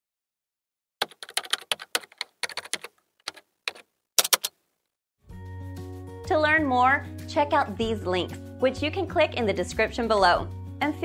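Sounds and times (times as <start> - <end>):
keyboard typing: 1.0 - 4.6.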